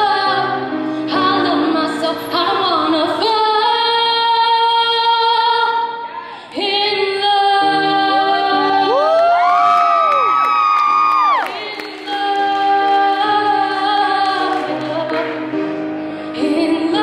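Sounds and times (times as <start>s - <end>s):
woman singing: 0.0s - 10.1s, 11.3s - 15.6s, 16.2s - 17.0s
grand piano: 0.0s - 17.0s
audience whooping: 8.8s - 11.7s.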